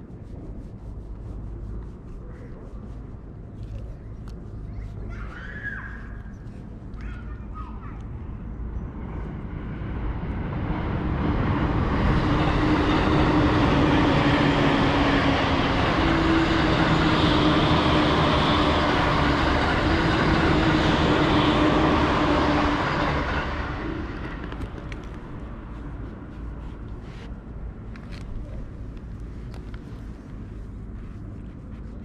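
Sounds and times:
large vehicle passing by: 0:08.8 - 0:27.4.

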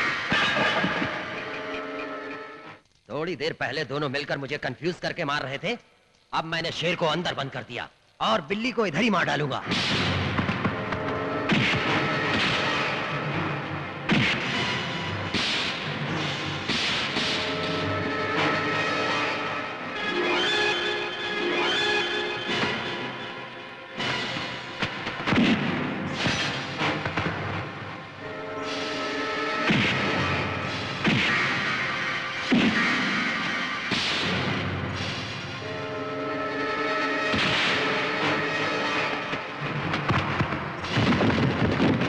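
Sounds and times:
dramatic film score: 0:00.0 - 0:03.0, 0:07.3 - 0:42.0
punch impact effects: 0:24.9 - 0:27.6, 0:29.7 - 0:31.8, 0:33.8 - 0:35.2.

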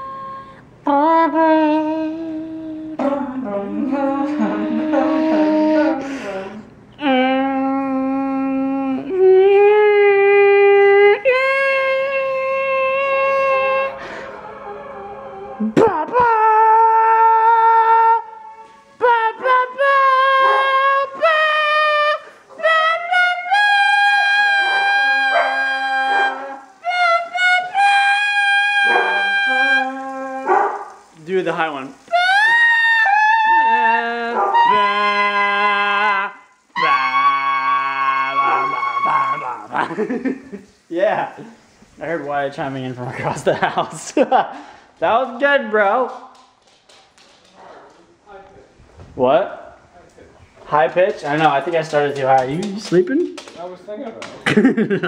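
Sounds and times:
people singing long held notes: 0:01.0 - 0:09.5, 0:11.2 - 0:30.5, 0:32.1 - 0:39.5
person speaking: 0:48.1 - 0:54.9.

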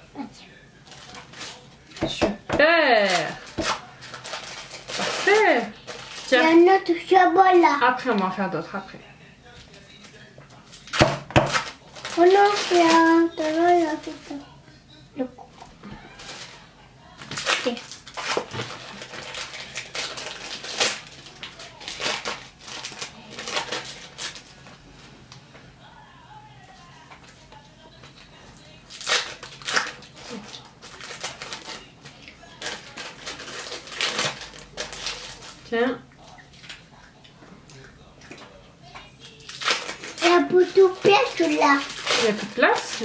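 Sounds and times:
plastic wrapping crinkling: 0:00.8 - 0:07.0, 0:09.6 - 0:14.6, 0:16.0 - 0:24.9, 0:27.2 - 0:35.8, 0:39.0 - 0:43.0.

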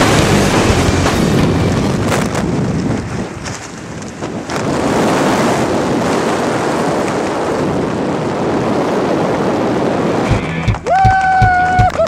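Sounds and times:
wind roaring over microphone: 0:00.0 - 0:12.0.

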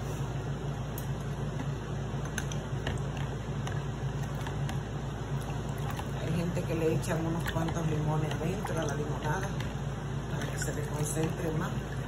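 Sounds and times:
steady low hum: 0:00.0 - 0:12.0
squishing limes: 0:00.8 - 0:12.0
juice trickling: 0:02.4 - 0:12.0.

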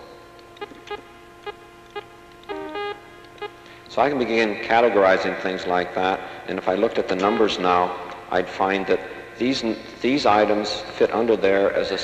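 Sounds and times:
two-note electronic tone: 0:00.0 - 0:04.3
faint steady hum: 0:00.0 - 0:12.0
short electronic beeps: 0:00.6 - 0:03.6.

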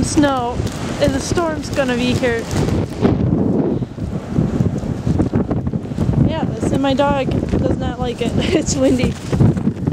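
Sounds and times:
blizzard wind buffeting microphone: 0:00.0 - 0:09.9.

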